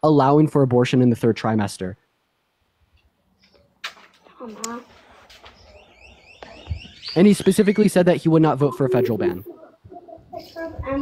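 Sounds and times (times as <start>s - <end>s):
rising electronic chirps: 5.6s - 10.1s.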